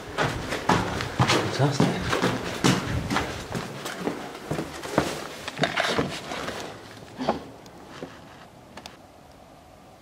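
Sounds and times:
footsteps on stone floor: 0.0 - 8.5.

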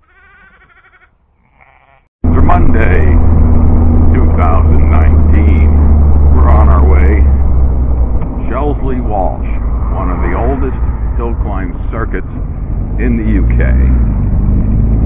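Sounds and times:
sheep bleating: 0.0 - 2.1
car engine droning: 2.2 - 15.0
wind noise: 2.2 - 15.0.

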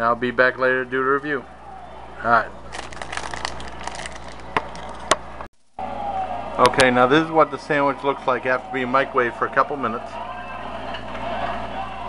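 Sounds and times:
handling crackles and clicks: 2.7 - 5.7.

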